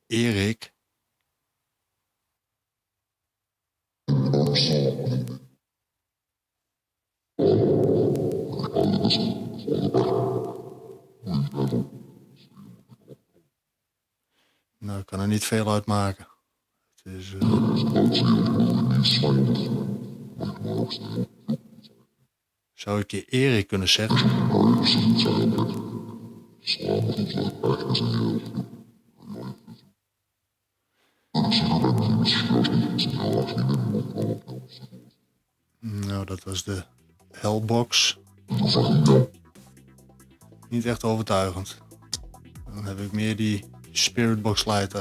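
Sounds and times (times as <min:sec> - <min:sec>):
garbled voice-like fragments: 0:07.4 - 0:12.8, 0:17.4 - 0:19.8, 0:31.4 - 0:35.0, 0:36.1 - 0:39.6
chopped garbled sound fragments: 0:36.6 - 0:44.4.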